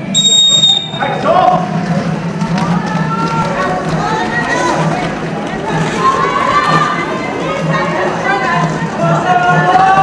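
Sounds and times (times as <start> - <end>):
referee's whistle: 0.1 - 1.0
people shouting: 2.7 - 10.0.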